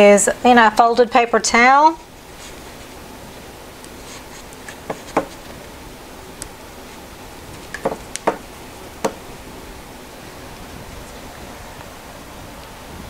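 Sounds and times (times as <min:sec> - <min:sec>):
steady faint hiss: 0:00.0 - 0:13.0
light knocks and taps: 0:04.8 - 0:05.5, 0:07.7 - 0:08.4.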